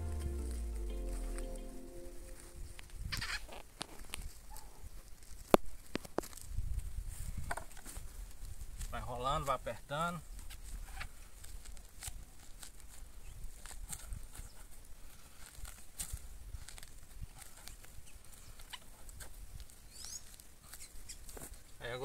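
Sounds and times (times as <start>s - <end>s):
low steady rumble: 0.0s - 2.8s
plastic film and paper crinkling: 10.4s - 21.6s.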